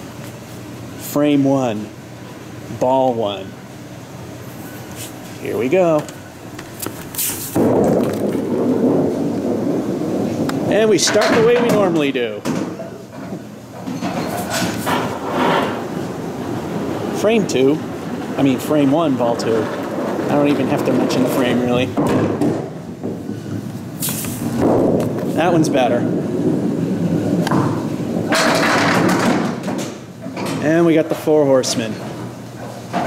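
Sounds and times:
pinsetter machinery rumbling: 0:05.4 - 0:33.0
ball rolling along return track: 0:05.5 - 0:23.8, 0:24.4 - 0:33.0
knocks: 0:07.6 - 0:14.2.

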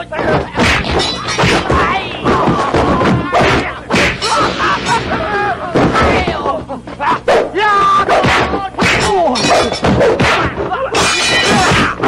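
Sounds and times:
shouting: 0:00.2 - 0:12.0
sharp hit: 0:03.4 - 0:06.4.

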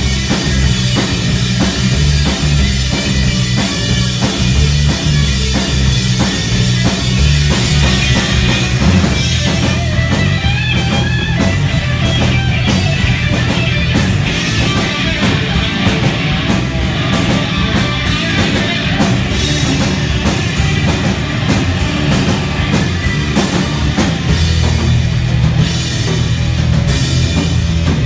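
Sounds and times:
bass guitar: 0:00.0 - 0:28.0
drum kit: 0:00.0 - 0:28.0
electric guitars: 0:00.0 - 0:28.0
high wavering guitar line: 0:00.0 - 0:28.0.

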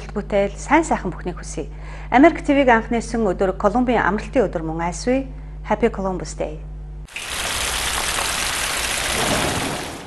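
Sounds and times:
rain-like hissing: 0:07.1 - 0:10.0.

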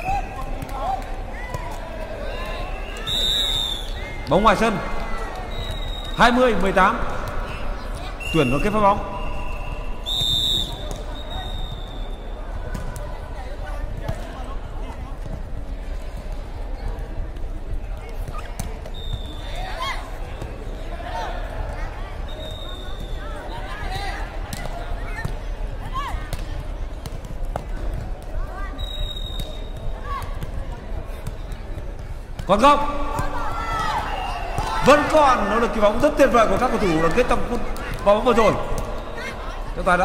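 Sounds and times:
players calling out: 0:32.5 - 0:40.0.

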